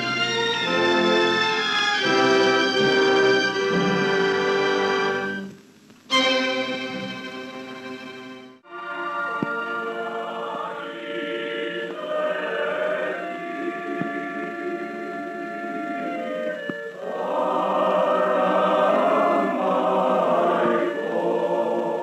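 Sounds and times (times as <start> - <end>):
choir singing held chords: 0.0 - 22.0.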